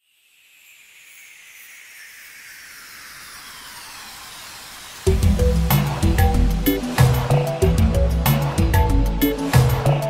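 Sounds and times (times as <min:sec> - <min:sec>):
electronic noise wash: 0:00.0 - 0:10.0.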